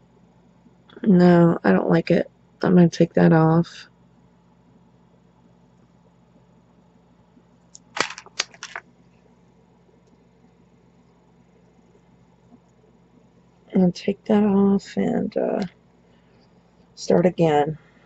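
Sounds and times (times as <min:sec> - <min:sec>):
beads clicking: 0:07.7 - 0:08.8.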